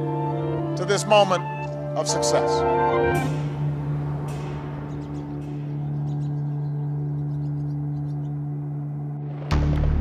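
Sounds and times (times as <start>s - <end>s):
deep gong-like drone: 1.7s - 10.0s.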